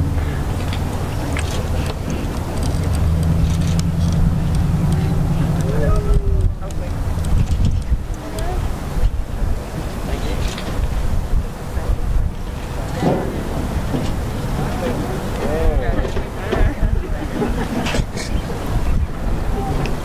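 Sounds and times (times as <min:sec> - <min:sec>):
faint voices: 0:00.0 - 0:20.0
wind buffeting microphone: 0:00.0 - 0:20.0.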